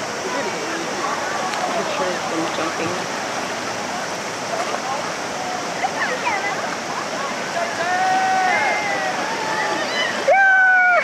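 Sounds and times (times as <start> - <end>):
river water rushing: 0.0 - 11.0
drawn-out shout: 7.6 - 11.0.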